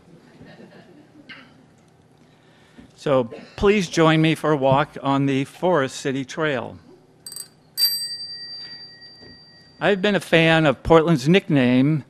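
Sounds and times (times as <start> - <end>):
small metal bell ringing: 7.3 - 10.0.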